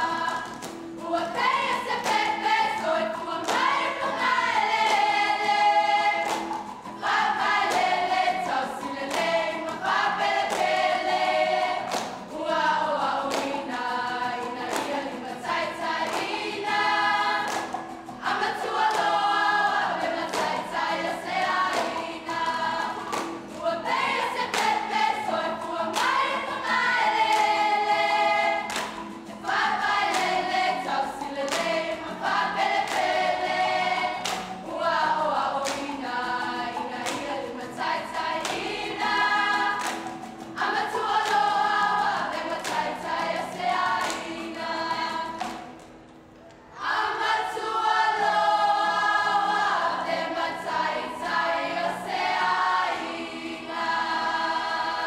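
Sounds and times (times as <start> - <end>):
group singing in chorus: 0.0 - 45.9, 46.7 - 55.0
sharp hand claps: 0.3 - 1.0, 1.7 - 2.8, 3.4 - 4.2, 4.8 - 11.2, 11.8 - 12.4, 13.2 - 13.8, 14.6 - 15.2, 16.0 - 19.4, 20.2 - 25.2, 25.9 - 26.4, 27.0 - 27.8, 28.6 - 31.8, 32.6 - 34.7, 35.6 - 36.0, 36.8 - 37.5, 38.2 - 46.0.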